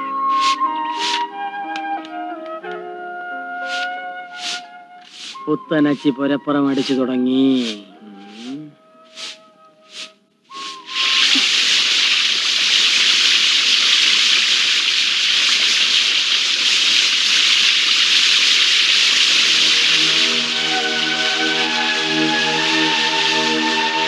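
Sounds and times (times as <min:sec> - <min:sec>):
music: 0:00.0 - 0:11.4, 0:19.5 - 0:24.0
garden hose spraying water: 0:00.2 - 0:01.3, 0:03.6 - 0:24.0.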